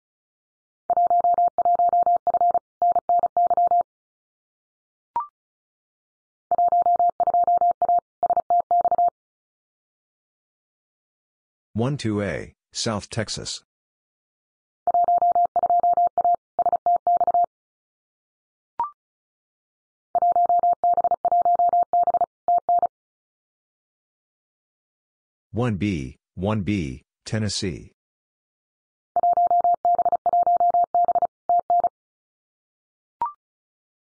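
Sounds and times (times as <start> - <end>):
morse code tone: 29.2 - 31.9.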